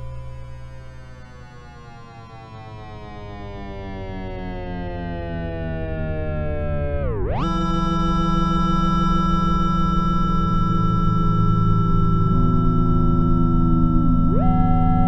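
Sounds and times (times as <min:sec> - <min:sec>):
synthesizer tone sliding in pitch: 0:11.1 - 0:15.0.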